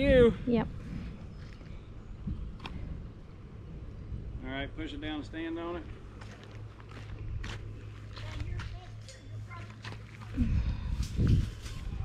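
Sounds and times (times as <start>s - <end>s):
low wind rumble on microphone: 0.0s - 6.2s, 10.3s - 12.0s.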